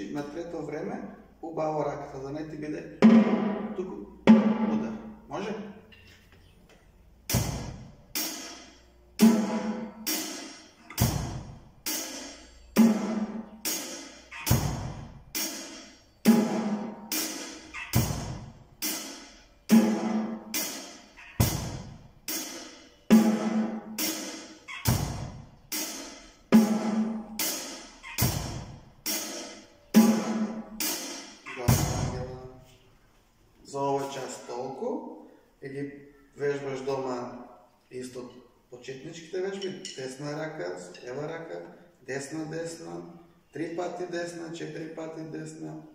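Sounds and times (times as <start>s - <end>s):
cymbal strikes: 7.3s - 32.4s.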